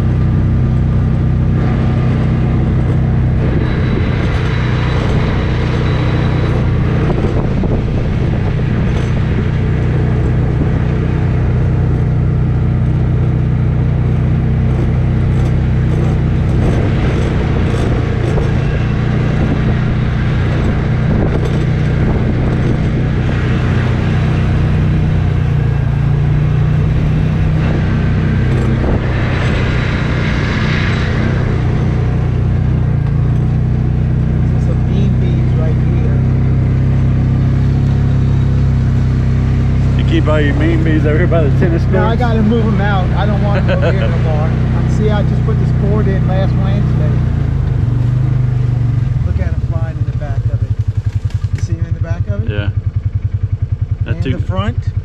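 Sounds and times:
road noise: 0.0 - 55.0
vehicle engine droning: 0.0 - 55.0.

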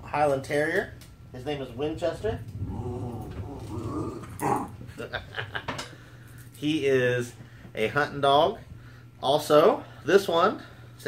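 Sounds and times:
dog howling: 2.6 - 4.8.

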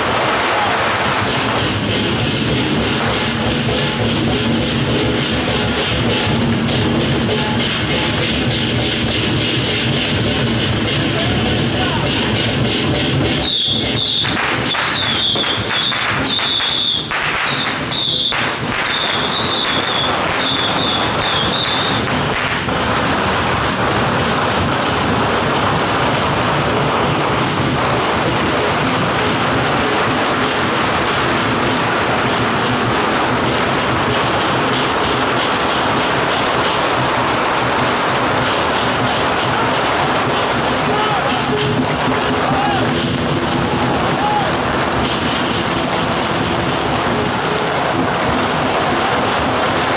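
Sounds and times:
firecrackers crackling: 0.0 - 49.9.

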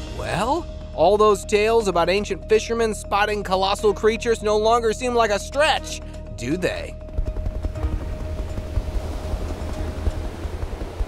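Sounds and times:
background music held note: 0.0 - 7.1
helicopter rotor rumble: 0.0 - 11.0.

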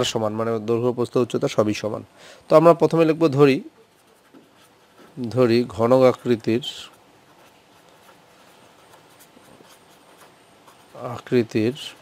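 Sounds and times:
marker pen writing on paper: 3.8 - 12.0.

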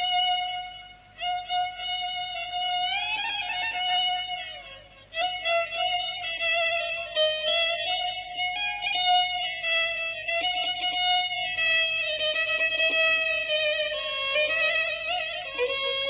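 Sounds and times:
solo violin melody: 0.0 - 16.0.

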